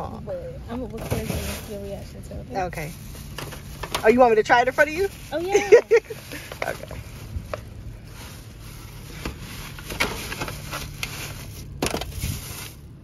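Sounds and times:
low steady hum: 0.0s - 13.0s
plastic lid and foil crinkling: 3.0s - 13.0s.

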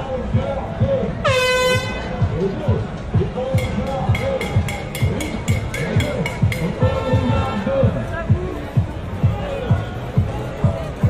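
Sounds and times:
crowd voices: 0.0s - 11.0s
steady low beat: 0.0s - 11.0s
air horn blast: 1.2s - 2.1s, 6.8s - 7.8s.

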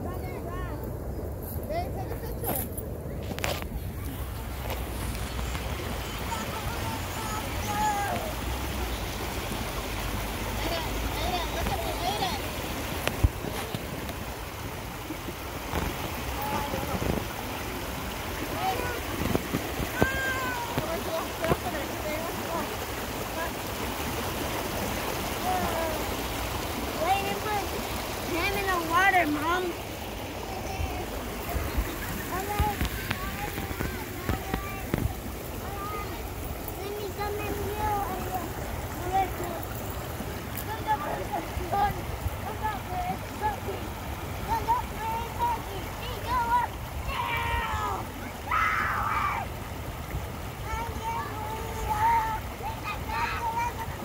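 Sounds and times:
children's voices: 0.0s - 17.4s, 18.1s - 49.6s, 50.3s - 54.0s
water rushing over rocks: 0.0s - 54.0s.

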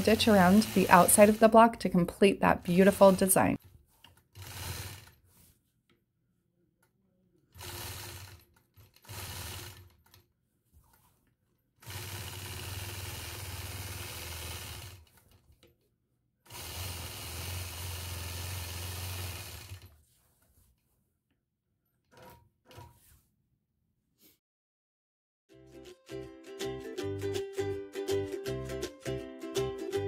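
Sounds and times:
quilting machine stitching: 0.0s - 5.5s, 7.5s - 11.2s, 11.8s - 15.8s, 16.5s - 20.0s.

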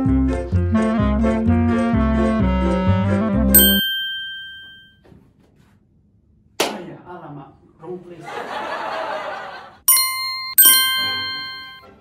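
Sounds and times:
bright chime ding: 3.6s - 4.9s, 9.9s - 12.0s
organ-like keyboard music: 10.0s - 12.0s.

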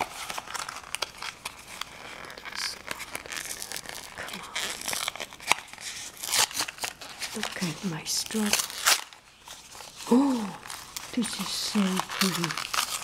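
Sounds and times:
paperboard box crinkling and tearing: 0.0s - 13.0s.

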